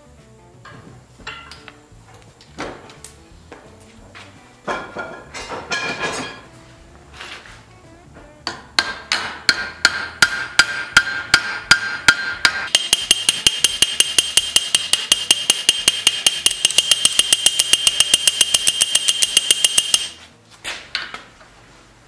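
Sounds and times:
hammer striking metal rivet: 8.5s - 20.2s.

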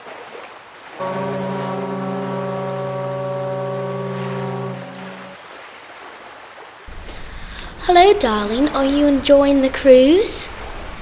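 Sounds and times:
ocean waves: 0.0s - 11.0s
ship horn long blast: 1.0s - 5.7s.

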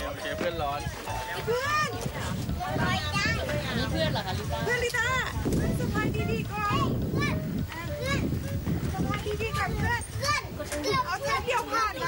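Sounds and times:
young child talking: 6.6s - 8.3s, 9.4s - 12.0s.

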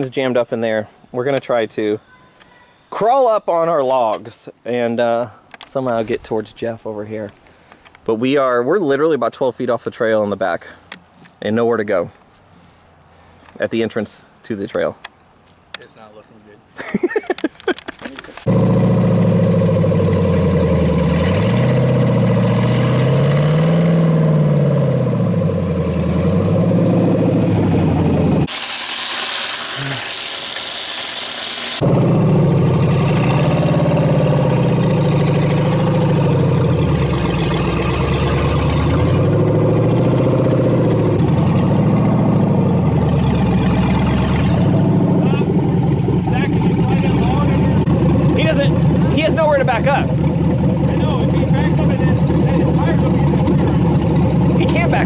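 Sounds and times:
off-road buggy engine revving: 18.4s - 30.3s, 31.6s - 55.0s.

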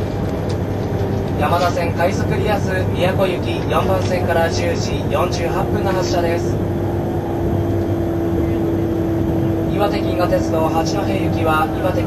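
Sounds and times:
train cabin rumble: 0.0s - 12.0s
station announcement voice: 1.1s - 7.0s, 8.2s - 12.0s.

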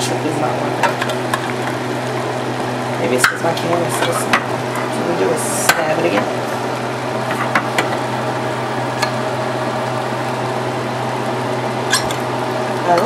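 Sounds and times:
low constant hum: 0.0s - 13.0s
food sizzling in a pan: 0.5s - 13.0s.

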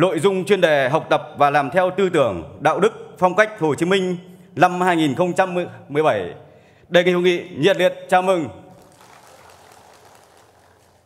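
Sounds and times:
audience applause: 8.7s - 11.0s.

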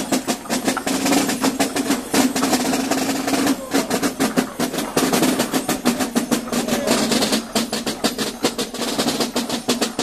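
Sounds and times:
parade drums beating fast with rolls: 0.0s - 10.0s.

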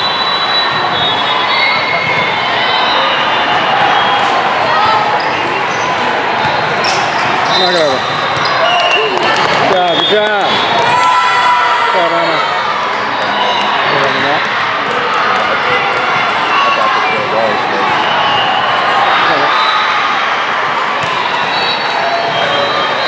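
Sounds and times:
sneakers squeaking on floor: 4.8s - 10.6s, 15.9s - 17.3s.

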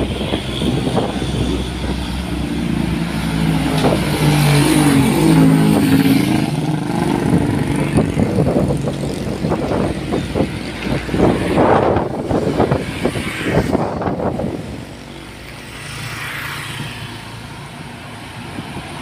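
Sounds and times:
traffic rumble and tyre noise: 0.0s - 19.0s
vehicle engine passing: 0.0s - 19.0s.

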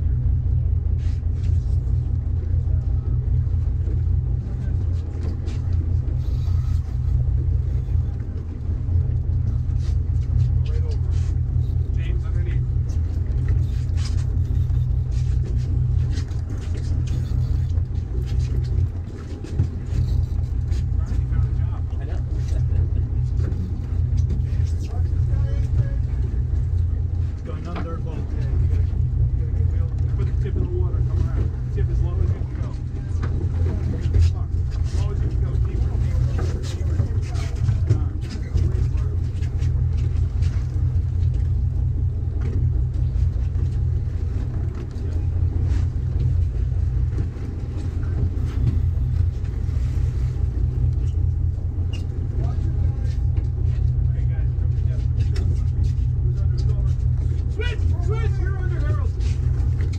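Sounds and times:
boat engine running: 0.0s - 59.9s.

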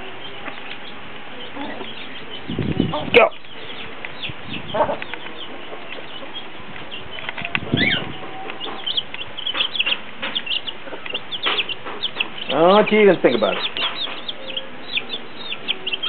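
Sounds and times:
chicks peeping: 0.0s - 16.0s
hen clucking: 0.0s - 16.0s.

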